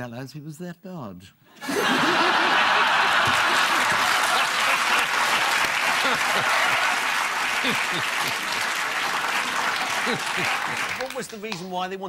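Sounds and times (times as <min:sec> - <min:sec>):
audience laughing: 0:01.6 - 0:11.2
studio audience applauding: 0:01.6 - 0:12.0.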